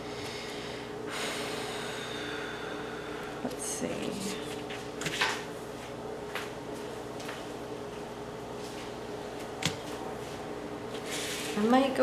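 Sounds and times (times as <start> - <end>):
long breathy exhale: 0.0 - 3.4
steady low hum: 0.0 - 12.0.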